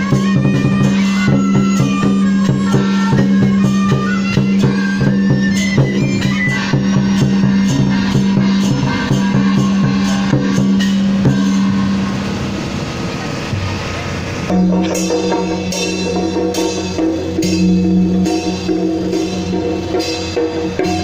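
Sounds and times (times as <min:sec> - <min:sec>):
regular drum beat: 0:00.0 - 0:12.2, 0:14.5 - 0:21.0
sharp percussion strikes: 0:00.0 - 0:13.7, 0:14.4 - 0:21.0
bamboo flutes playing melody: 0:00.0 - 0:21.0
low drone: 0:00.0 - 0:21.0.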